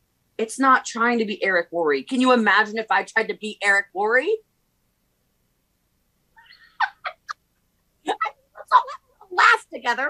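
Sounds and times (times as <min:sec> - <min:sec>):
woman's high squeaky laugh: 0:06.4 - 0:07.4.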